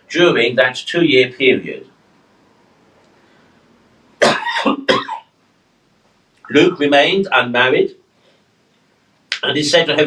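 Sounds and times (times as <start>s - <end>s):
man coughing: 4.2s - 5.3s.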